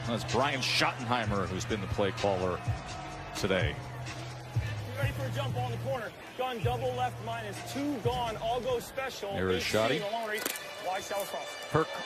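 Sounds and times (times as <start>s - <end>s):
background music: 0.0s - 12.0s
men talking: 0.0s - 12.0s.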